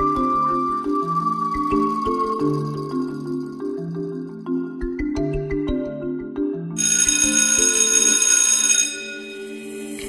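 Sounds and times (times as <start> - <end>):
background music: 0.0 - 10.0
electric school bell ringing: 6.8 - 10.0.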